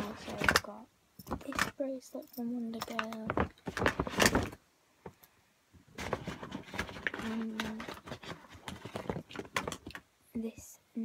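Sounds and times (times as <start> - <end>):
handling noise rustling and clicking: 0.0 - 10.1.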